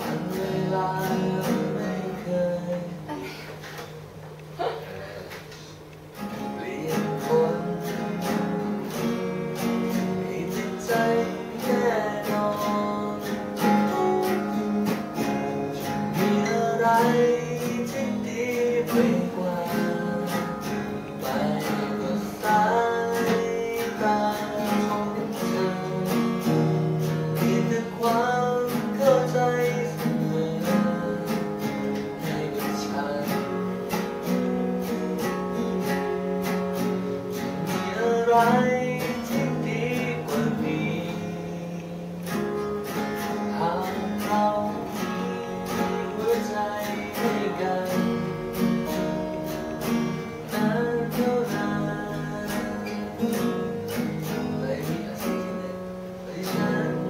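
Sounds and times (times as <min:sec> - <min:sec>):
acoustic guitars strummed and picked: 0:00.0 - 0:57.0
person singing: 0:06.2 - 0:36.5, 0:37.4 - 0:42.4, 0:43.3 - 0:57.0.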